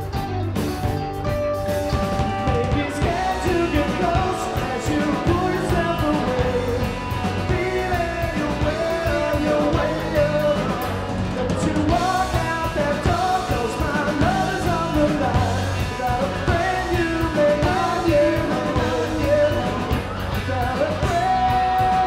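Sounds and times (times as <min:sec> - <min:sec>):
drum kit: 0:00.0 - 0:22.0
electric bass: 0:00.0 - 0:22.0
electric guitar: 0:00.0 - 0:22.0
male lead vocal: 0:02.3 - 0:22.0.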